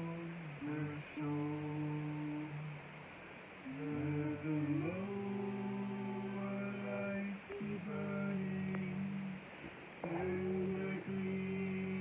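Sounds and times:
person singing slow song: 0:00.0 - 0:12.0.

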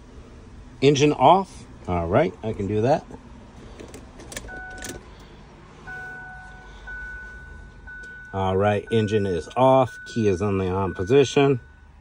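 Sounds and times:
ignition key clicks: 0:03.8 - 0:05.1
electronic warning beeps: 0:04.5 - 0:05.0, 0:05.8 - 0:12.0.

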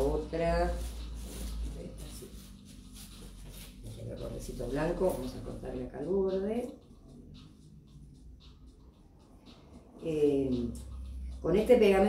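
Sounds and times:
steady low hum: 0:00.0 - 0:12.0
rice paper rustling: 0:00.7 - 0:03.7.

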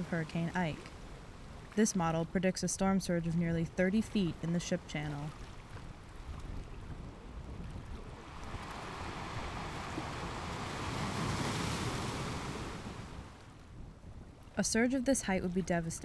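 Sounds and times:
wind: 0:00.0 - 0:16.0
surging wave rushing water: 0:07.8 - 0:13.5.

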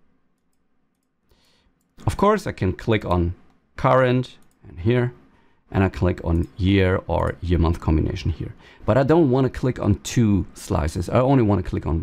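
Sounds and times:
computer mouse clicks: 0:00.4 - 0:02.1.

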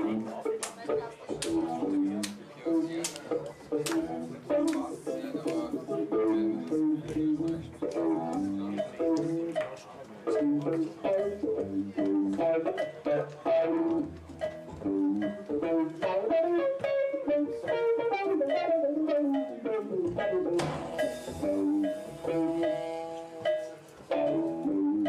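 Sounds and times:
drums: 0:00.0 - 0:25.0
jazz fusion band playing: 0:00.0 - 0:25.0.

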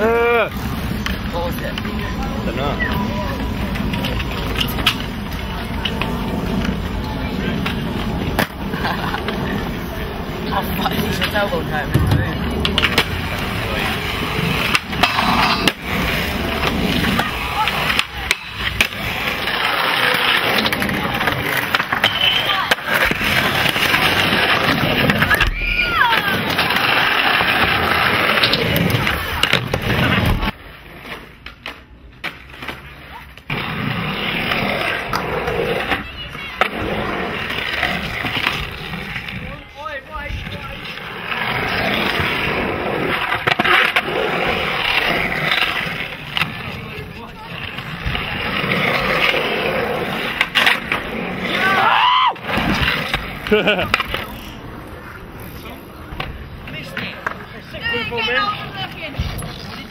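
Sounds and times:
skateboard clacks: 0:00.0 - 0:59.9
skateboard wheels rolling: 0:00.0 - 0:59.9.

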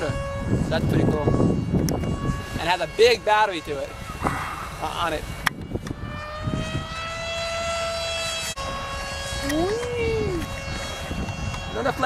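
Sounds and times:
electric motor propeller whining: 0:00.0 - 0:12.0.

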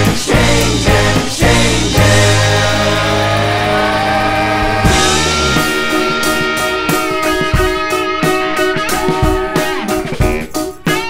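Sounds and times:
rock band music: 0:00.0 - 0:11.0.

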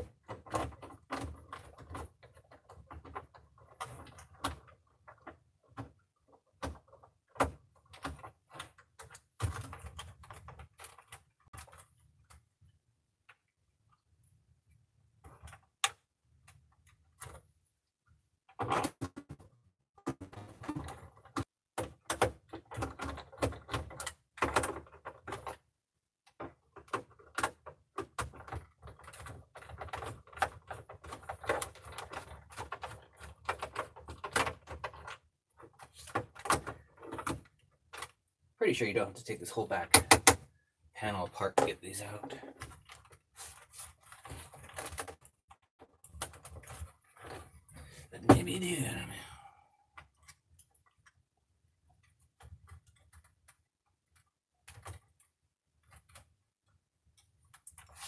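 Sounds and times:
handling clicks and scrapes: 0:41.6 - 0:49.0, 0:57.0 - 0:58.0.

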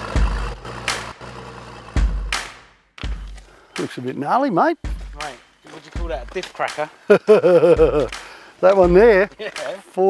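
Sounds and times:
engine running near idle: 0:00.0 - 0:03.6.

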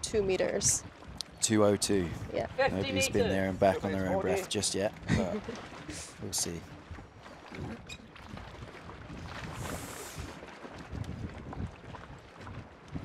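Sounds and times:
moving water: 0:00.0 - 0:13.0
wind on microphone: 0:00.0 - 0:13.0.

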